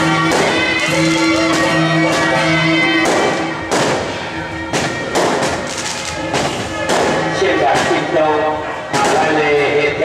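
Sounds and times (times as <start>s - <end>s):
faint traditional music: 0.0s - 10.0s
firecrackers banging: 0.0s - 10.0s.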